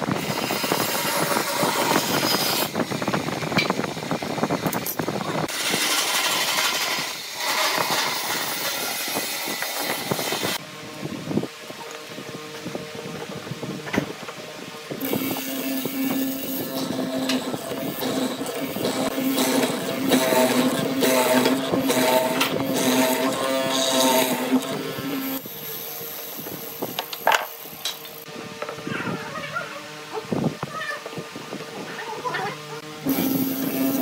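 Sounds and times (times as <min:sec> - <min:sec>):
mortising machine cutting wood: 0:05.5 - 0:10.6, 0:15.0 - 0:26.2, 0:32.8 - 0:34.0.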